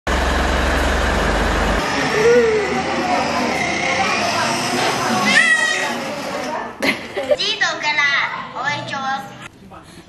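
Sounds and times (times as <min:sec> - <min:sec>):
truck engine idling: 0:00.1 - 0:03.5.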